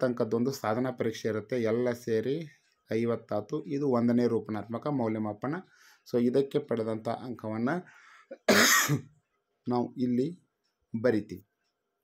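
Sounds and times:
man speaking syllable: 0.0s - 7.9s, 11.0s - 11.4s
man clearing throat: 8.3s - 9.1s.

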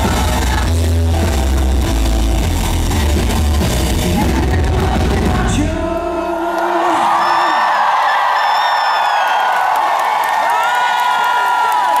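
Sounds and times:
crowd cheering and whooping: 6.2s - 12.0s.

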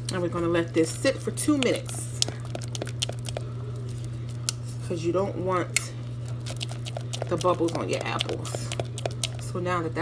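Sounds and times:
steady low hum: 0.0s - 10.0s
spatula clicking and scraping pot: 1.3s - 3.6s, 5.8s - 9.6s.

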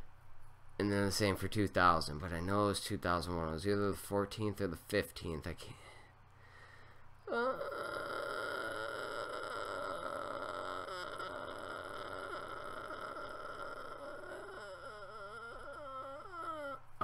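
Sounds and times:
man's high-pitched vocal whine: 7.2s - 17.0s.

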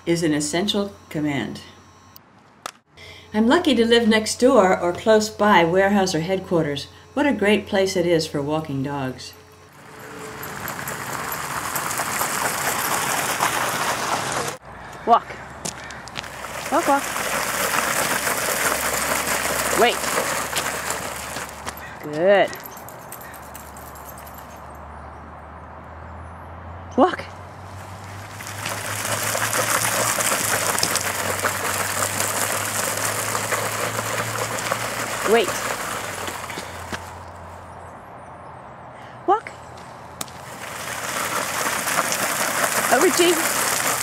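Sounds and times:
bicycle tires scraping on ground: 9.7s - 15.0s, 15.6s - 23.6s, 27.6s - 37.8s, 40.2s - 44.0s.

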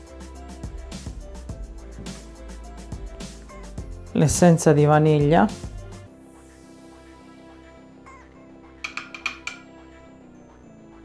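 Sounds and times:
background music: 0.0s - 11.0s
glass vial clinking on rim: 8.9s - 9.7s.

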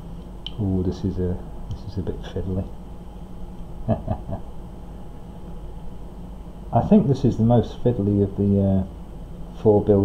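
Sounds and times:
faint room hum: 0.0s - 10.0s
man chuckling: 3.8s - 4.6s.

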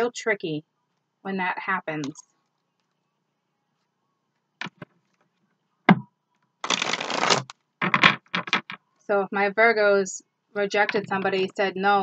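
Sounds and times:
cards riffling and shuffling: 6.6s - 8.8s
cards tapping and flicking: 6.7s - 8.8s.

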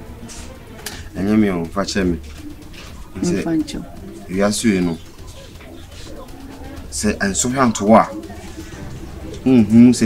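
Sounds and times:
dove cooing faintly: 0.0s - 10.0s
low steady hum: 0.0s - 10.0s.

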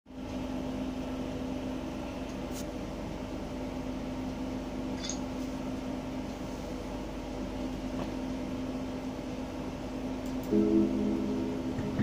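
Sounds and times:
appliance humming: 0.1s - 12.0s.

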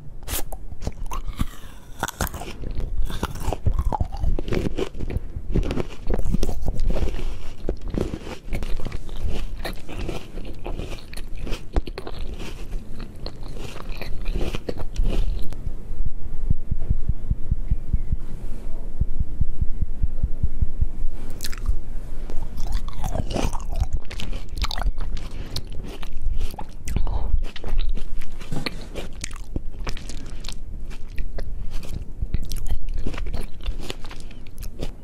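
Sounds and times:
grapes crunching: 0.3s - 15.6s, 21.3s - 34.9s
low thumping of chewing: 0.5s - 18.3s, 20.4s - 35.0s.

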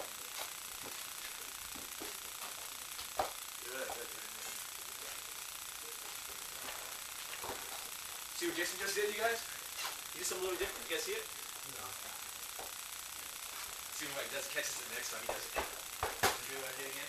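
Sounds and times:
low room hiss: 0.0s - 17.0s.

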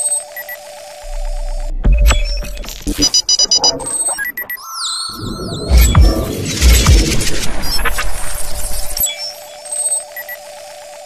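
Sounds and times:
fast-pulsing electronic alarm tone: 0.0s - 10.6s
short high electronic beeps: 2.0s - 7.2s.

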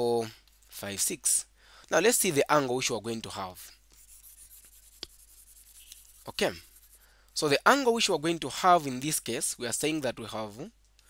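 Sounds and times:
stylus rubbing on tablet screen: 3.6s - 7.0s.

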